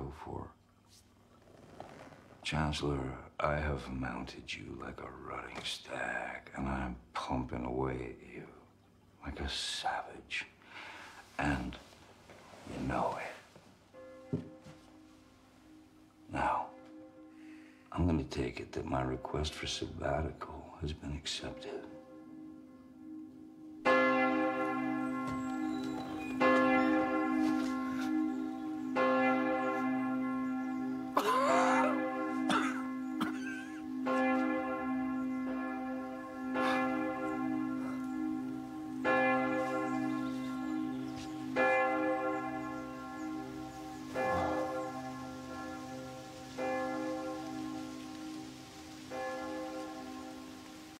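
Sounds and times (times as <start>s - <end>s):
church bell tolling: 13.9s - 51.0s.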